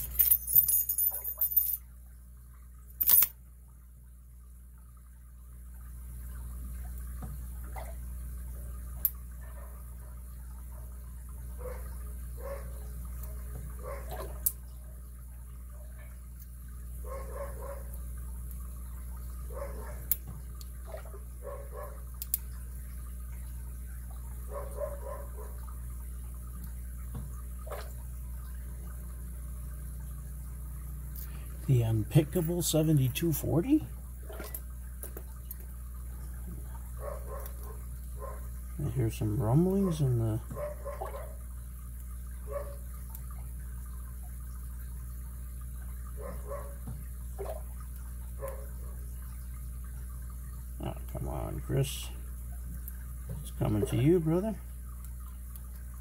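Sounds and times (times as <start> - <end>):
steady low hum: 0.0 - 56.0
lock pick metallic clicks: 3.0 - 3.3.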